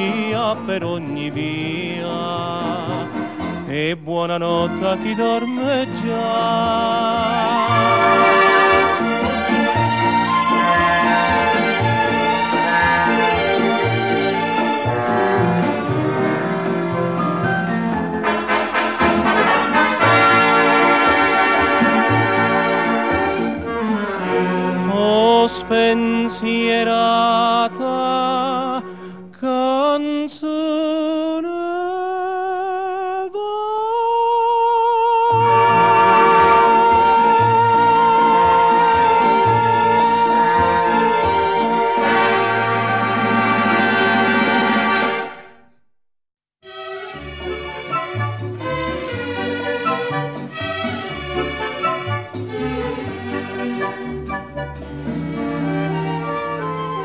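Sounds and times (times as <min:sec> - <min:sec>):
orchestra with brass playing: 0:05.5 - 0:28.9, 0:35.4 - 0:45.7, 0:47.1 - 0:57.0.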